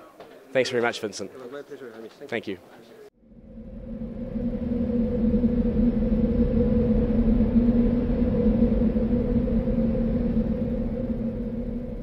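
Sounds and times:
low electronic drone: 3.2 - 12.0.

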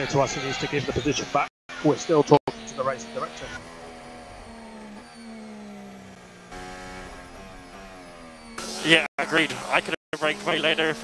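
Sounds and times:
racing car engine: 0.0 - 11.0.

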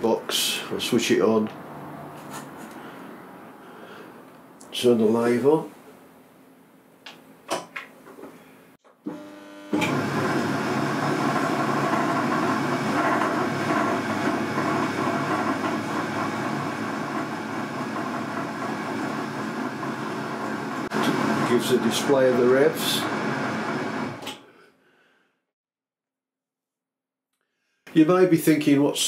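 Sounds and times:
lathe running steadily: 9.2 - 24.2.

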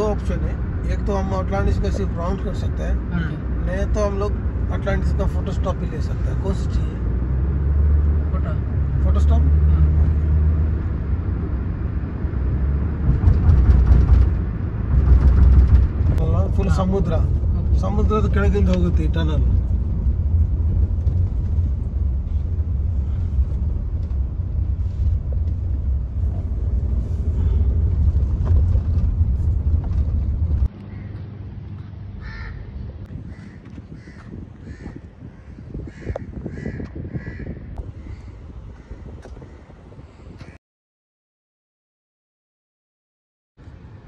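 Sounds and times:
car cabin rumble: 12.8 - 30.7
bird calling: 30.8 - 31.2, 32.2 - 39.7.

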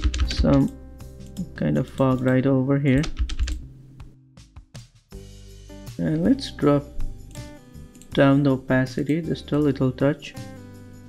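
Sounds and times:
keyboard and mouse clicks: 0.0 - 2.4, 7.3 - 8.4
quiet background music: 0.0 - 11.0.

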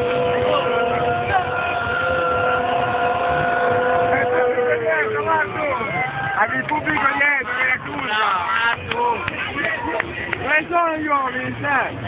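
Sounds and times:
crowd holding a long ooh: 0.0 - 6.4.

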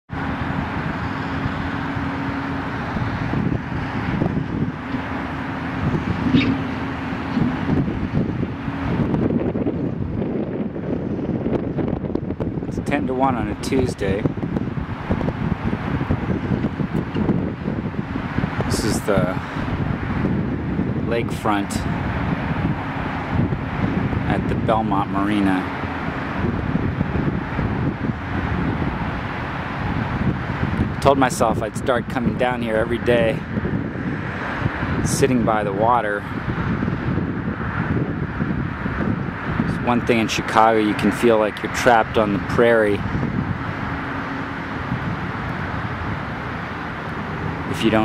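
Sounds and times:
distant road traffic hum: 0.1 - 48.0
wind on microphone: 0.1 - 48.0.

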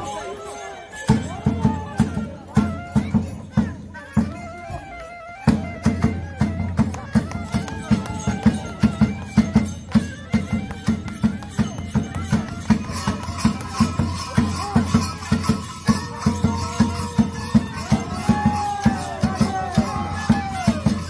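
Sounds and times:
wavering wind instrument melody: 0.0 - 21.0
drum beating quick rhythm: 5.5 - 21.0.

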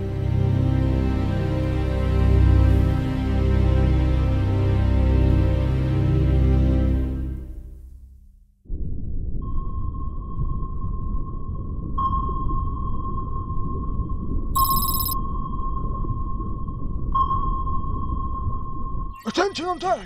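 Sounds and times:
sonar pings: 14.6 - 15.2.

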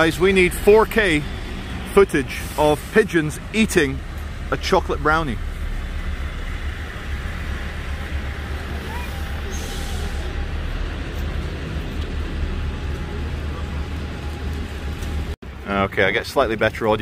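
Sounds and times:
traffic rumble: 0.0 - 17.0.

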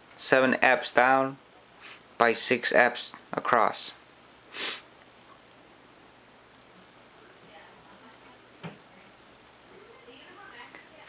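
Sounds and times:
person sniffing: 1.8 - 2.0, 4.5 - 4.9.

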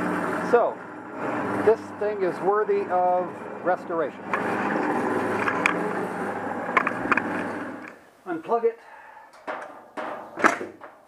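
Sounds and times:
band saw motor running: 0.0 - 7.9.

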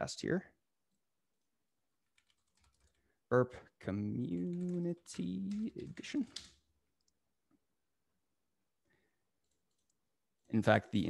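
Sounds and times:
faint keyboard typing: 2.0 - 3.2, 3.9 - 7.2, 9.3 - 11.0.

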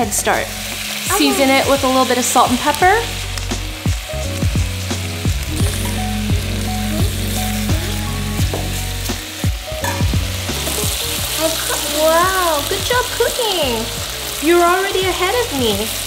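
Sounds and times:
chicken sizzling in hot oil: 0.0 - 16.0.

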